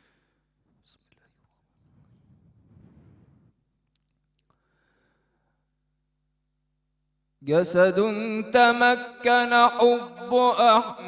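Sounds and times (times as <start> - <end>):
faint breathing: 0.0 - 0.9, 4.5 - 5.7
soft hiss into microphone: 0.6 - 4.6.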